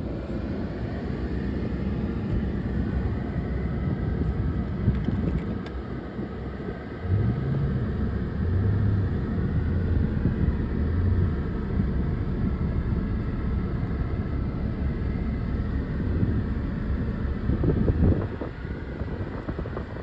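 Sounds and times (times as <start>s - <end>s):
car engine idling from inside cabin: 0.0s - 20.0s.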